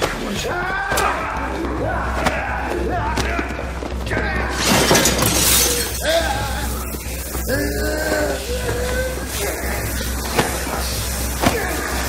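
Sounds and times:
loud shattering crash: 4.6 - 6.0.

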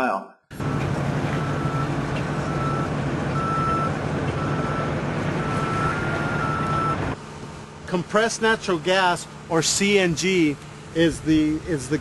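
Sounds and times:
truck engines running: 0.5 - 12.0
reversing alarm beeping: 0.6 - 7.2.

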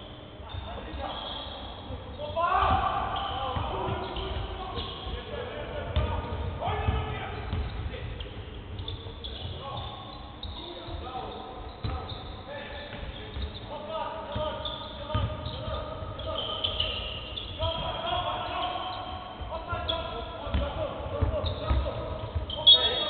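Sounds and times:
basketball bouncing on wooden court: 6.0 - 8.0, 11.8 - 12.0, 14.4 - 15.8, 20.5 - 22.6.

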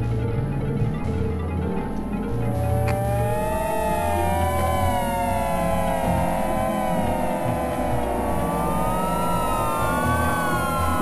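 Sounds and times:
choppy low bass: 0.0 - 11.0
gliding synthesizer drones: 0.0 - 11.0.

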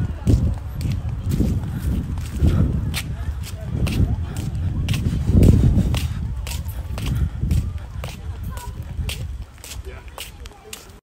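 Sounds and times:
footsteps on concrete: 0.0 - 11.0.

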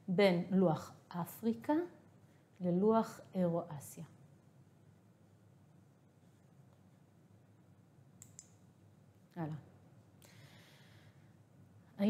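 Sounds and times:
computer mouse clicks: 8.2 - 8.6.

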